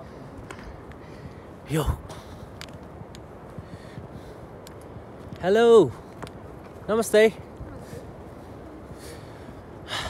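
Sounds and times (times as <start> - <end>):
person breathing: 8.9 - 10.0.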